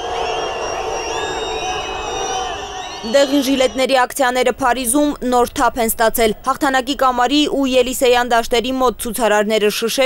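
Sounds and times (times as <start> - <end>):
crowd shouting: 0.0 - 4.1.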